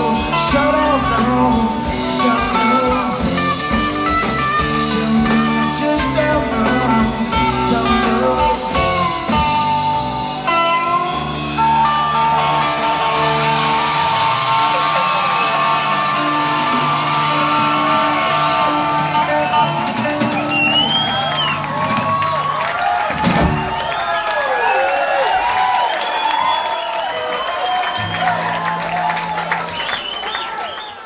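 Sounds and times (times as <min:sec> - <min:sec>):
guitar with pitch bends: 0:00.0 - 0:22.1
rock band backing: 0:00.0 - 0:31.0.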